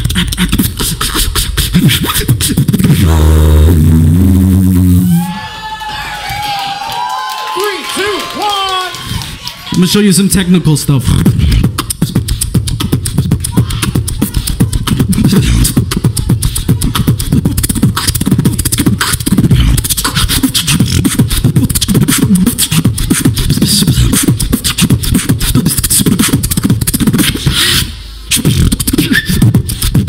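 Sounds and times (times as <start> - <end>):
person beatboxing into microphone: 0.0 - 5.2, 8.9 - 30.0.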